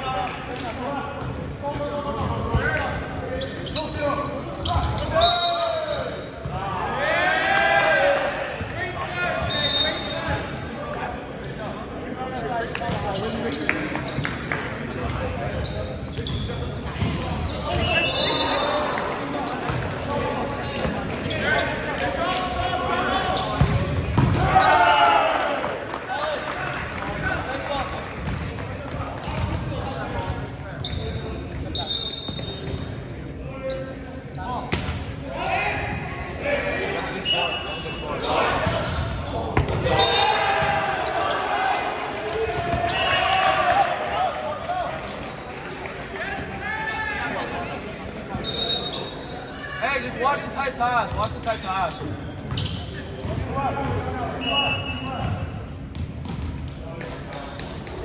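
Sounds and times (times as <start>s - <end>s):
sneakers squeaking on hardwood: 2.2s - 5.4s, 12.9s - 18.7s, 23.2s - 24.7s, 27.7s - 28.4s, 29.3s - 32.9s, 36.8s - 41.4s, 51.1s - 56.6s
players shouting: 4.8s - 10.2s, 24.2s - 27.8s, 35.2s - 45.1s.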